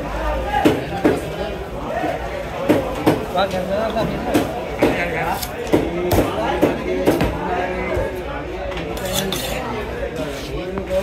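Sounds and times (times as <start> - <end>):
knife scraping on sharpening stone: 9.0 - 9.7.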